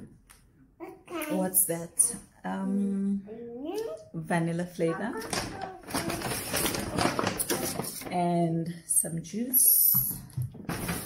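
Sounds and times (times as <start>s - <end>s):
shopping bag rustling: 5.1s - 8.1s.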